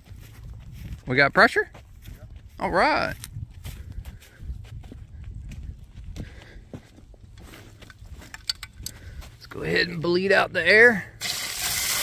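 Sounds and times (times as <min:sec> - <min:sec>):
footsteps on dirt and grass: 0:00.0 - 0:11.8.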